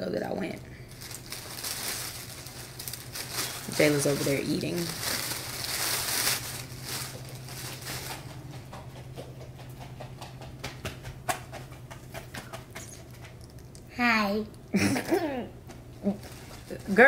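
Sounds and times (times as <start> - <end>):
steady low hum: 0.0 - 17.0
plastic bag rustling: 0.8 - 8.5, 16.1 - 17.0.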